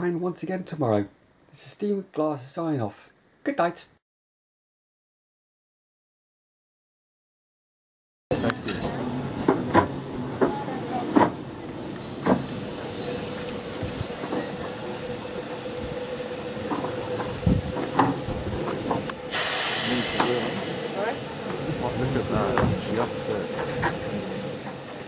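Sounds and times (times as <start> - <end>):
steam hissing: 8.3 - 25.0.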